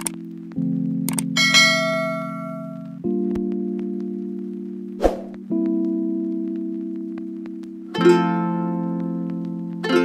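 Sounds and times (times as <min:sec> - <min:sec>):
background music of held chords: 0:00.0 - 0:10.0
clicks: 0:01.1 - 0:01.3.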